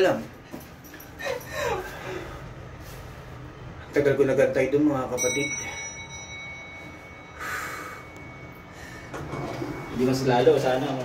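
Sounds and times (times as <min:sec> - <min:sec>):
elevator arrival chime: 0:04.7 - 0:11.0.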